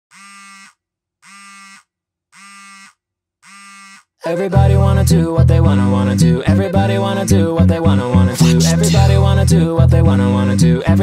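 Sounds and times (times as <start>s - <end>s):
buzzing electronic tones: 0.1s - 4.1s.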